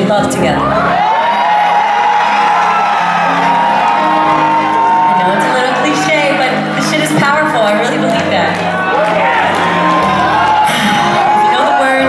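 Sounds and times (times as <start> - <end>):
audience whooping and shouting: 0.3 - 7.4, 8.3 - 12.0.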